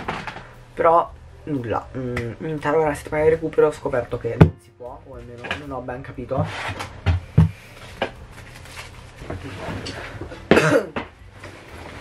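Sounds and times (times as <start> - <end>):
man coughing: 10.5 - 11.0.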